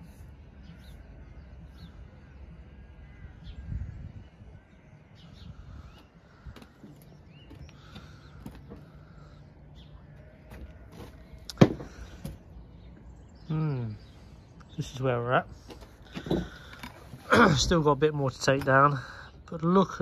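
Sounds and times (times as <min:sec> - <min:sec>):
birds calling: 0:00.0 - 0:20.0.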